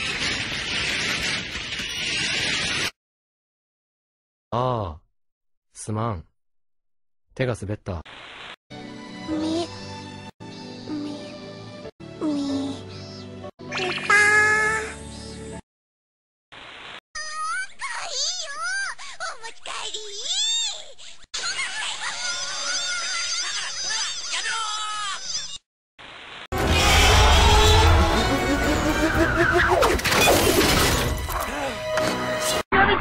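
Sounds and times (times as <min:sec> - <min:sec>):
crash with shattering: 0:26.6 - 0:31.4
background music: 0:27.4 - 0:29.9, 0:30.7 - 0:32.6.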